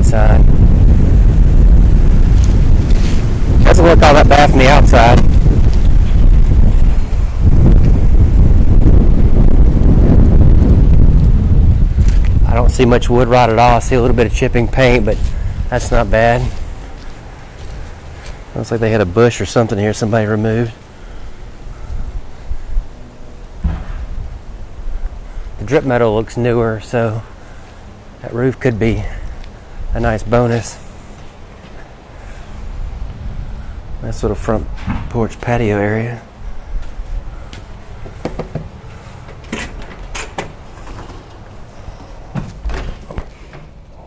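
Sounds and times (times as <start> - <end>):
wind on microphone: 0.0 - 18.6, 21.0 - 26.3, 31.9 - 44.0.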